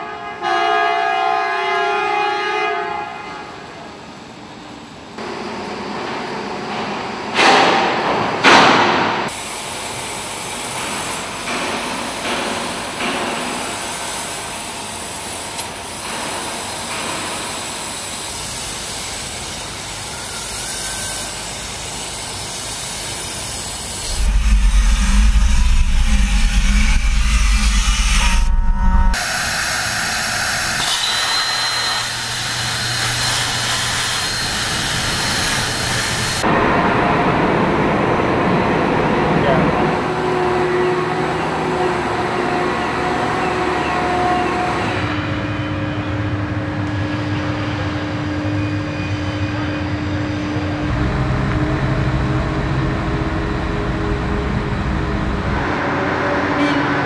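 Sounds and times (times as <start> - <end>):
rush of air and machinery: 20.4 - 39.2
steady high whine: 23.9 - 39.1.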